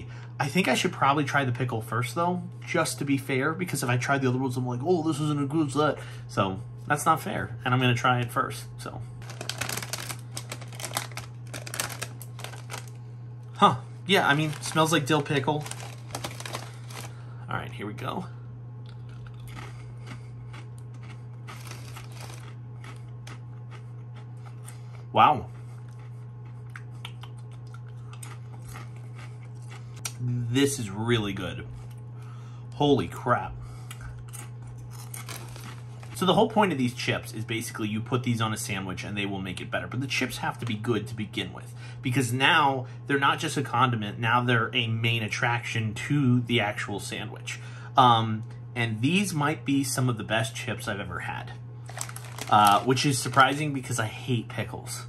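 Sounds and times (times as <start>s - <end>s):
low steady hum: 0.0s - 55.0s
chip bag crinkling: 9.2s - 13.0s, 14.1s - 17.3s, 18.9s - 23.8s, 34.3s - 36.3s, 51.8s - 54.2s.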